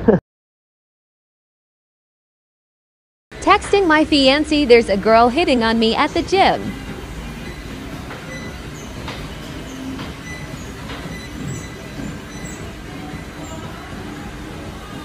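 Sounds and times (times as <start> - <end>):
faint hum: 3.4 - 15.0
low mechanical rumble: 3.4 - 15.0.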